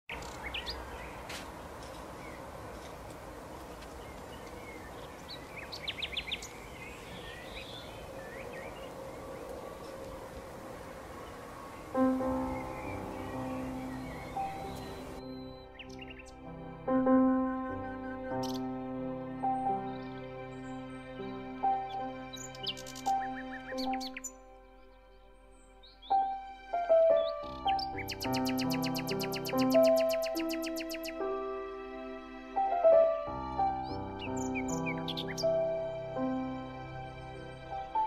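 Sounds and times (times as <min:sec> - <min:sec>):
birds chirping: 0:00.1 - 0:38.0
outdoor background hiss: 0:00.1 - 0:38.0
background music: 0:11.9 - 0:38.0.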